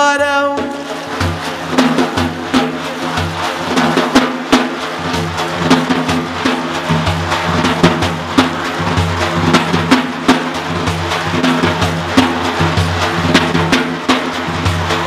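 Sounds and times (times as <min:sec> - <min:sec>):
person singing verses: 0:00.0 - 0:01.0
frame drum beating a rhythm: 0:00.0 - 0:15.0.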